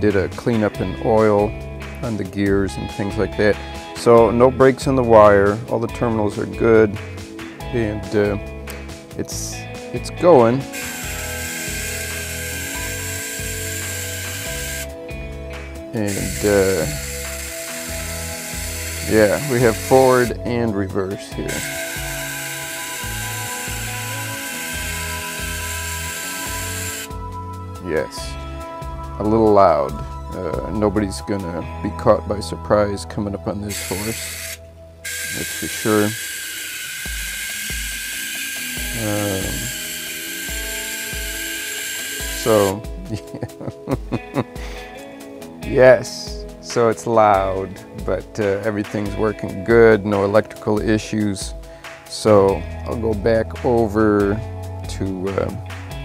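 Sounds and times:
toy electric motor whirring: 10.6 - 14.9, 16.0 - 20.3, 21.4 - 27.1, 33.7 - 42.9.

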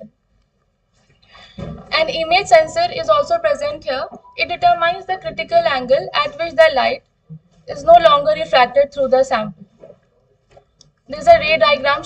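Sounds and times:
faint breath: 1.2 - 1.8
woman narrating: 1.9 - 7.0, 7.7 - 9.6, 11.1 - 12.0.

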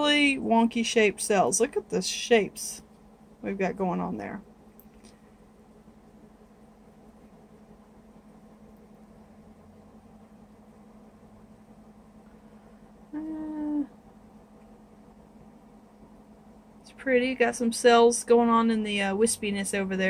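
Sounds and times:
faint low hum: 0.0 - 20.0.

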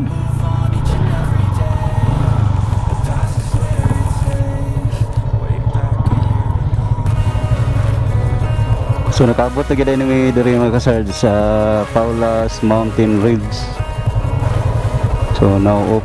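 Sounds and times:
background music: 0.0 - 16.0
motorcycle engine running: 0.0 - 16.0.

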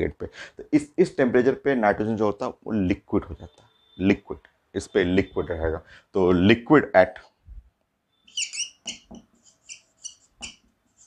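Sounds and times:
marker squeaking on whiteboard: 8.1 - 11.0.

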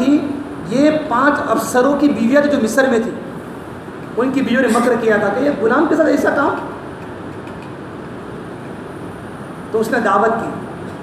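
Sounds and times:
low background rush: 0.0 - 11.0.

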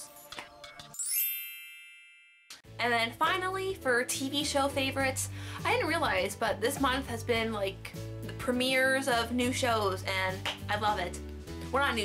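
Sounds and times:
shimmering chime ding: 1.0 - 2.6.

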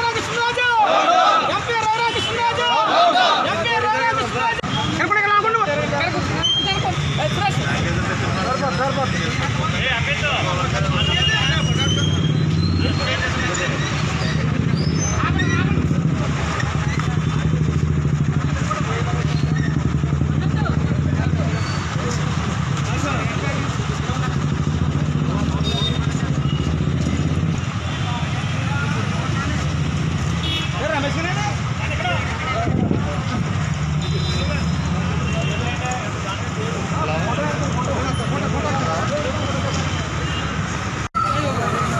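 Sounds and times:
man speaking loudly: 0.0 - 6.4
street traffic rumble: 0.0 - 41.9.

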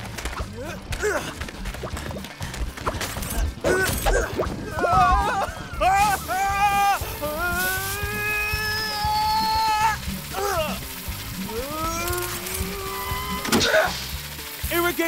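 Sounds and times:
background music: 0.0 - 15.0
cartoon character wordless cries: 3.7 - 10.9, 11.5 - 13.9.

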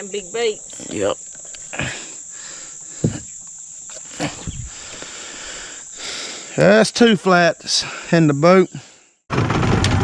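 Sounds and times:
insects trilling: 0.0 - 9.2.

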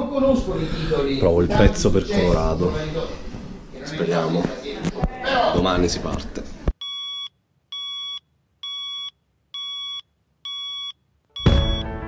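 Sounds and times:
phone alarm beeping: 6.8 - 11.9
loud music: 11.5 - 12.0.

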